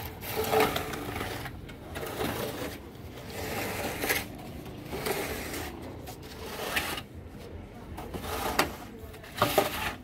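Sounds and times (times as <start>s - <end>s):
straightedge scraping cement: 0.0s - 7.1s, 8.0s - 10.0s.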